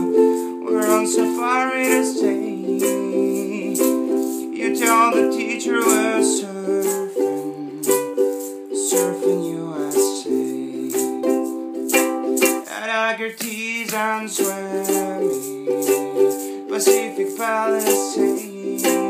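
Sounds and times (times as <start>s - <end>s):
man singing: 0.0s - 19.0s
ukulele strumming: 0.0s - 19.0s.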